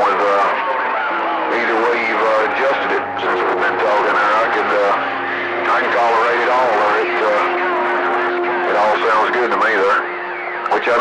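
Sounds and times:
steady tones: 0.0s - 11.0s
voices over cb radio: 0.0s - 11.0s.

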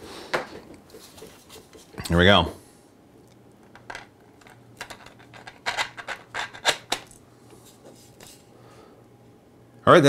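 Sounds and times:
plastic parts clicking and scraping: 3.8s - 7.1s.

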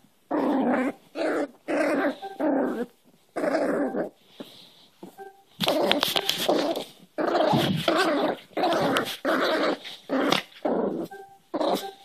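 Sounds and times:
puppy play-growling: 0.3s - 4.2s, 5.6s - 12.0s.

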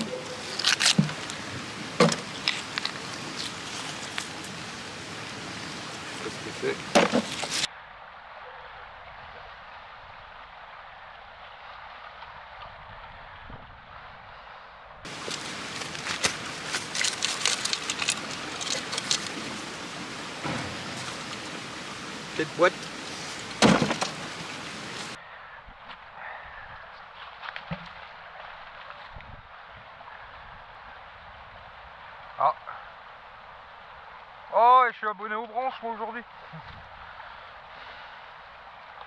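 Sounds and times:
flowing river: 0.0s - 13.2s, 15.1s - 25.5s
rain: 0.0s - 39.0s.

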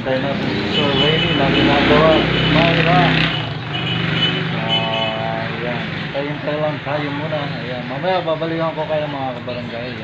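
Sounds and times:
vehicle horn toot: 0.7s - 5.3s.

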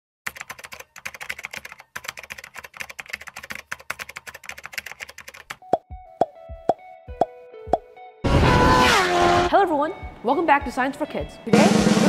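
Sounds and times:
fast keyboard typing: 0.3s - 5.6s.

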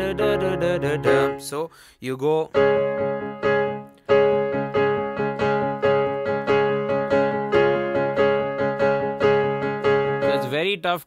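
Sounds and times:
digital piano repeating chord: 0.0s - 1.6s, 2.5s - 10.8s.

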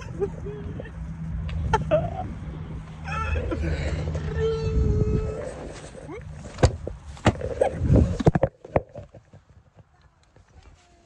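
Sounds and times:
rustling: 5.2s - 11.0s.

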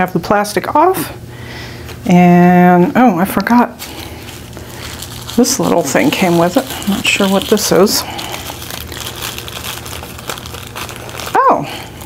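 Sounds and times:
tissue paper rustling: 3.8s - 12.0s.

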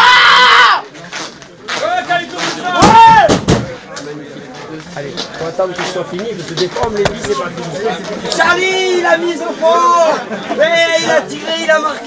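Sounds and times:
voices chattering in echoing room: 0.8s - 12.0s
heavy thumps: 6.8s - 7.5s.

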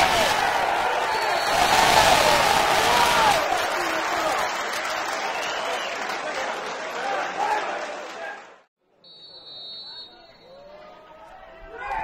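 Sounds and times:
spectators clapping: 0.0s - 8.7s.

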